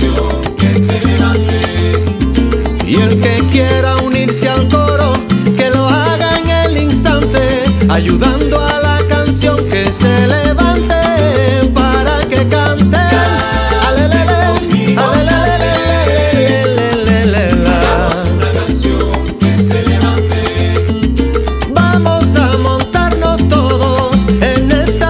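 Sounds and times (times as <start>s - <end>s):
salsa band music: 0.0s - 25.0s.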